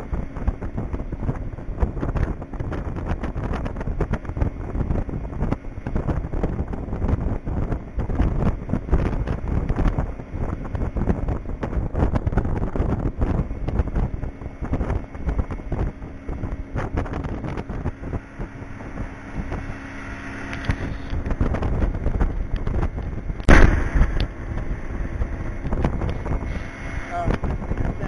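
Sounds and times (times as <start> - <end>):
low engine hum: 0.0 - 28.0
wind buffeting microphone: 0.0 - 28.0.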